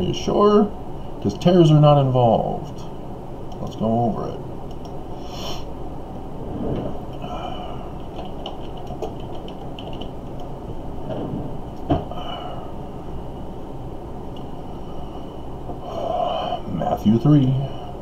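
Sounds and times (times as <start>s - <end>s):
low background rumble: 0.0s - 18.0s.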